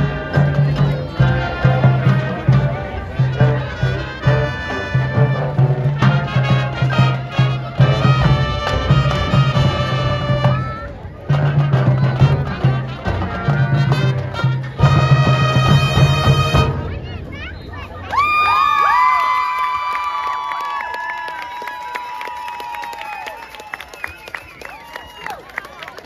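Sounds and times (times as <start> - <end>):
marching band playing: 0.0 - 18.0
crowd cheering: 17.3 - 26.0
people clapping: 18.0 - 26.0
whooping: 18.0 - 26.0.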